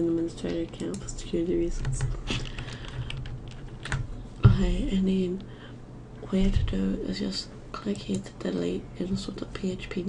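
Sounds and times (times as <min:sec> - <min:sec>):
keyboard and mouse clicks: 0:00.0 - 0:04.1
faint low hum: 0:00.0 - 0:10.0.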